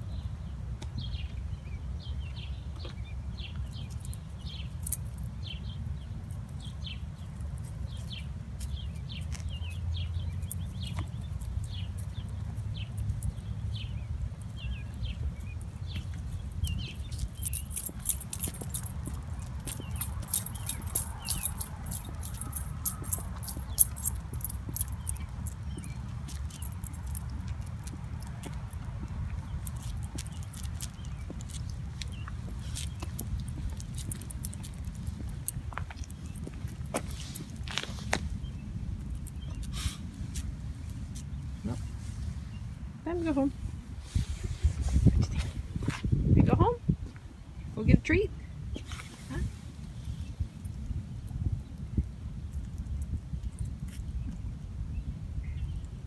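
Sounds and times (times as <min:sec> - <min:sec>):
small birds chirping: 0:00.0 - 0:56.0
wind rumbling on microphone: 0:00.0 - 0:56.0
footsteps on asphalt: 0:07.2 - 0:41.4.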